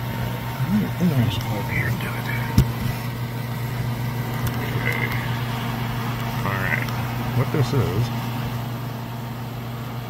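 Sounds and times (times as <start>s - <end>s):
fan running: 0.0s - 10.0s.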